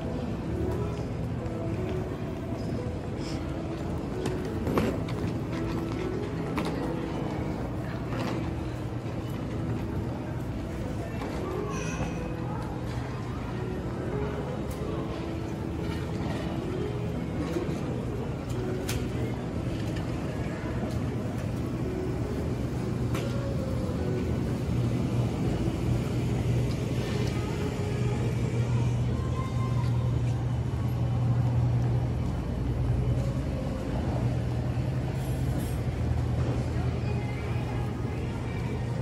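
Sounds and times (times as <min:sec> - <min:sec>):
faint background music: 0:00.0 - 0:39.0.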